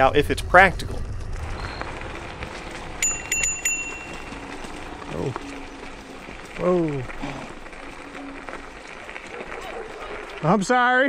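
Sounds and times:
tyre and wind noise: 0:00.0 - 0:10.6
faint scooter motor hum: 0:01.3 - 0:10.5.

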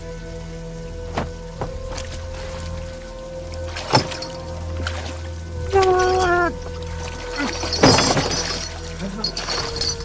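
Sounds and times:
dramatic background music: 0:00.0 - 0:10.0
wooden chest crashing down: 0:01.1 - 0:02.0, 0:03.8 - 0:04.4, 0:07.7 - 0:08.6.

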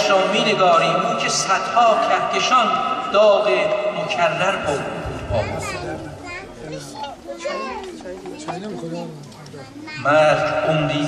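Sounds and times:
children chattering and calling out: 0:04.7 - 0:11.0.

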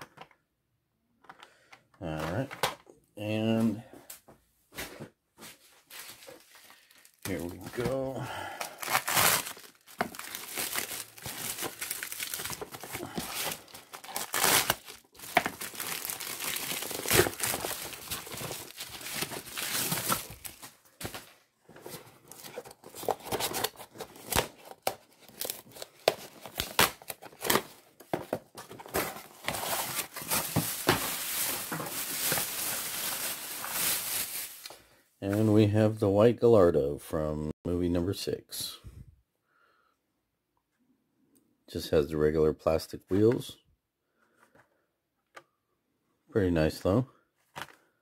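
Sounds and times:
packaging crinkling and rustling: 0:05.6 - 0:35.4
packaging tearing: 0:08.6 - 0:20.8, 0:22.3 - 0:27.8, 0:28.8 - 0:34.7.

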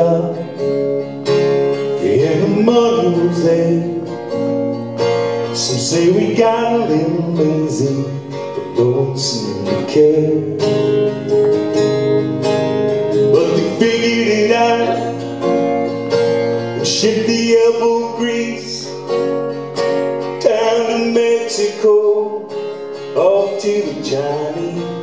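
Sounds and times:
man singing: 0:00.0 - 0:00.8, 0:01.8 - 0:04.4, 0:05.4 - 0:11.0, 0:13.2 - 0:15.5, 0:16.6 - 0:19.2, 0:20.4 - 0:25.0
acoustic guitar strummed: 0:00.0 - 0:25.0.

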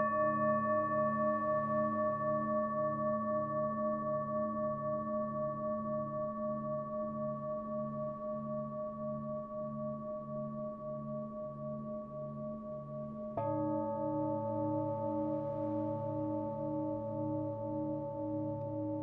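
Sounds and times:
singing bowl ringing: 0:00.0 - 0:10.6, 0:12.8 - 0:19.0.

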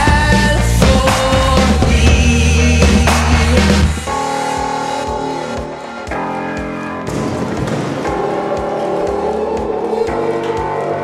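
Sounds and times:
steady low drum beat: 0:00.0 - 0:04.1.

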